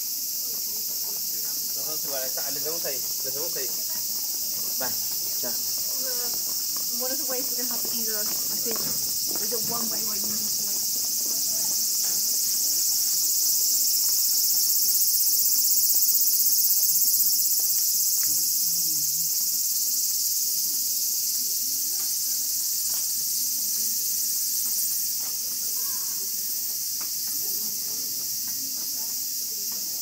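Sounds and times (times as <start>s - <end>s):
cicadas chorus: 0.0s - 30.0s.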